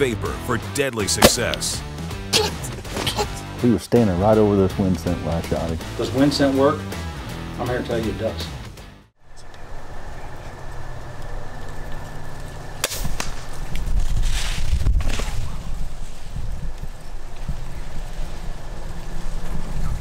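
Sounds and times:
sharp snap: 1.2s - 1.7s, 12.8s - 13.5s
sharp rustles: 12.8s - 20.0s.

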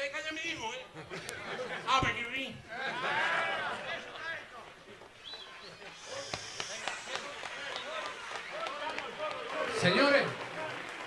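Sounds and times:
many voices talking: 1.1s - 10.8s.

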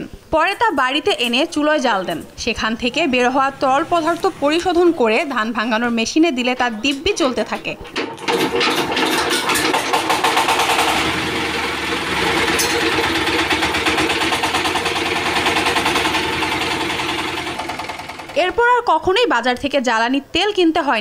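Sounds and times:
diesel engine running steadily: 10.1s - 18.4s.

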